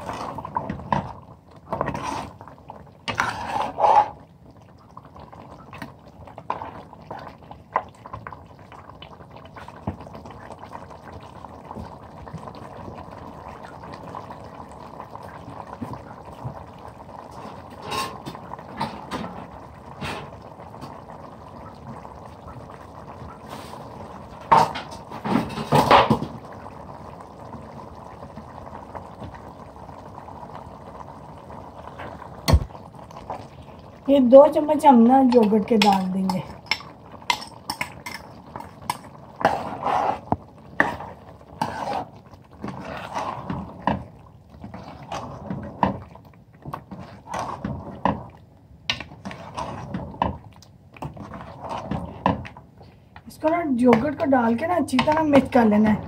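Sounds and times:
gravy bubbling and sizzling: 0.0s - 56.0s
metal ladle scraping pan: 3.1s - 4.2s, 35.4s - 44.0s, 44.6s - 46.0s, 46.8s - 48.2s, 48.9s - 50.3s.

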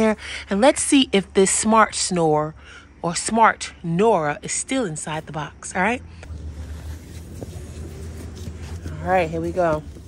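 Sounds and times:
faint handling noises: 6.2s - 10.0s.

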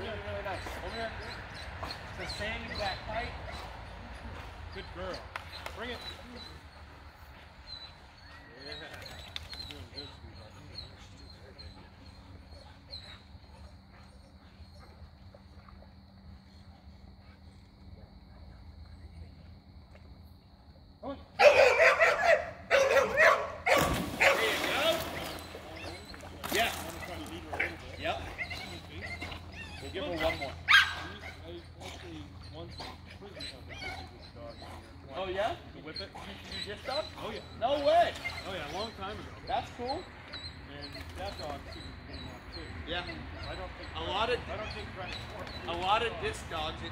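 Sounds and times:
dog barking: 21.4s - 25.3s, 30.1s - 31.4s.

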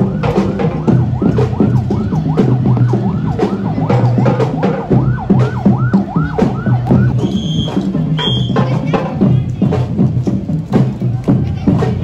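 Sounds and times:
siren-like synth sweep: 0.0s - 7.2s
steady drumbeat: 0.0s - 12.0s.

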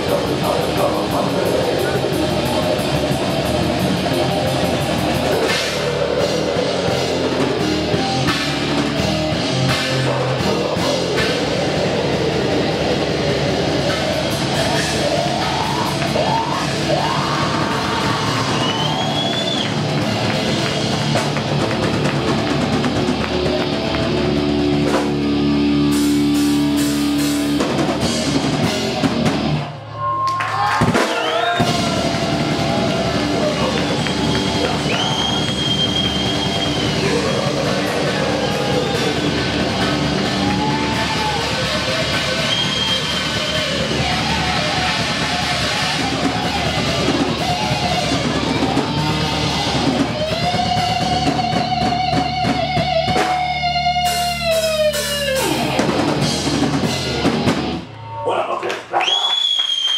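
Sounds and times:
drum kit: 0.0s - 29.8s, 30.4s - 58.0s
distorted electric guitars: 0.0s - 29.9s, 30.8s - 58.9s
death metal band playing live: 0.0s - 58.2s
bass guitar: 0.0s - 59.0s
high thin whistle: 59.0s - 59.9s.

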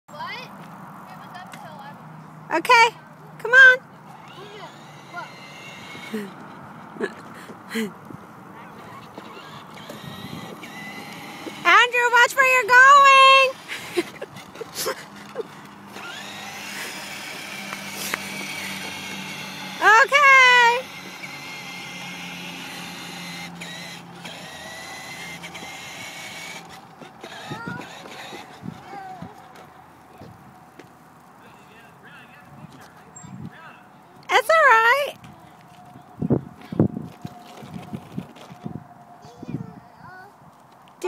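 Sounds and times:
toy electric motor whining: 4.1s - 6.6s, 8.6s - 29.7s, 36.7s - 39.5s
person calling out: 19.8s - 20.8s.

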